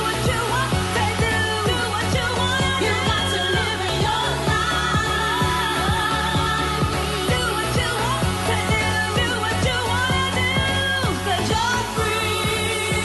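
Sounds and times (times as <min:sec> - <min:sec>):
house music: 0:00.0 - 0:13.0
sung vocal line: 0:00.0 - 0:13.0
kick drum beat: 0:00.3 - 0:13.0.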